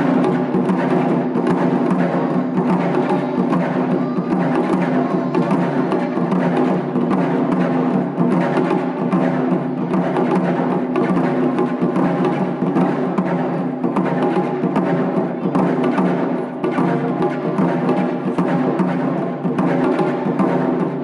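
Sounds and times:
taiko drumming: 0:00.0 - 0:21.0.

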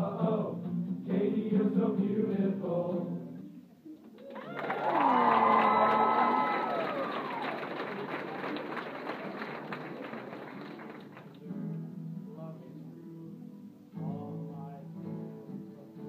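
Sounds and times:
crowd cheering and whooping: 0:04.2 - 0:10.2
applause: 0:04.2 - 0:11.5.

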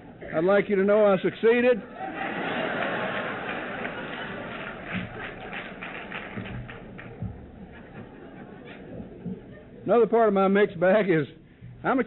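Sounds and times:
audience laughter: 0:01.8 - 0:09.9
audience clapping: 0:02.0 - 0:09.5
low thuds: 0:04.7 - 0:09.9, 0:11.4 - 0:12.0.

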